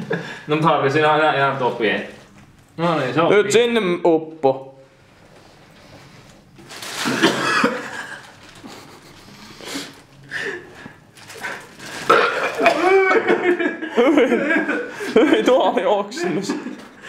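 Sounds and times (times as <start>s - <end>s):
man retching and gagging: 7.0s - 8.2s, 12.0s - 13.5s.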